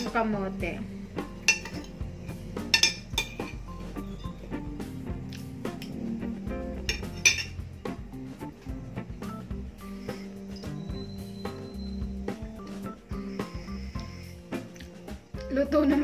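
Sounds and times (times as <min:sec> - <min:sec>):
background music: 0:00.0 - 0:16.0
cutlery clinking on plate: 0:01.4 - 0:02.0, 0:02.7 - 0:03.6, 0:06.9 - 0:07.6.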